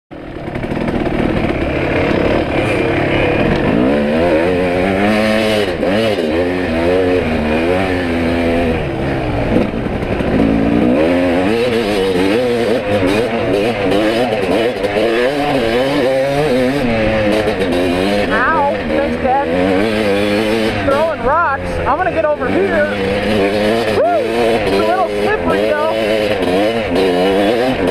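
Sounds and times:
dirt bike engine revving: 0.1s - 27.9s.

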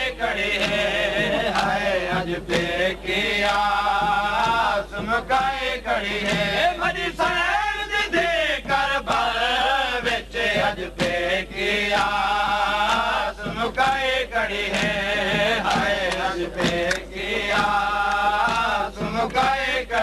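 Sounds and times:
man chanting lament: 0.0s - 5.1s.

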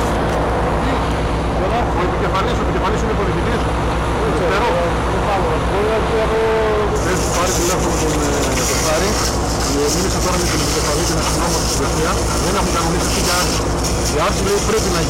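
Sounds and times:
heavy engine running: 0.0s - 15.0s
distant murmur of people talking: 0.6s - 15.0s
hiss: 7.0s - 15.0s.

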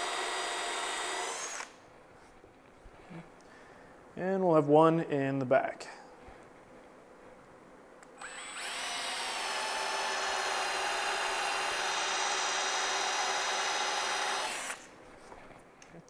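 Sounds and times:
cordless drill whining into wood: 0.0s - 1.8s, 8.2s - 14.9s.

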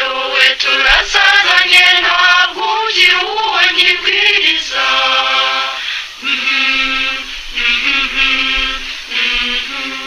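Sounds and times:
person singing long held notes: 0.0s - 10.0s.

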